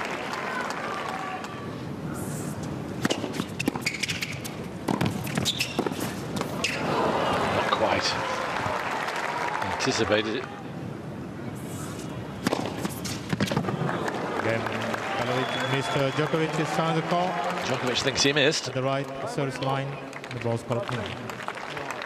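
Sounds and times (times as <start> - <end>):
crowd noise: 0.0 - 3.6, 4.6 - 22.0
tennis racket hitting ball: 3.0 - 6.8.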